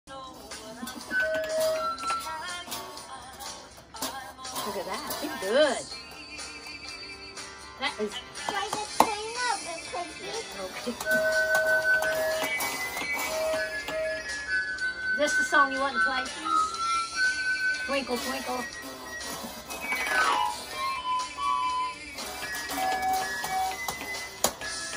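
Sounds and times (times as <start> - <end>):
toy electronic keyboard notes: 1.0 - 2.5, 10.3 - 24.9.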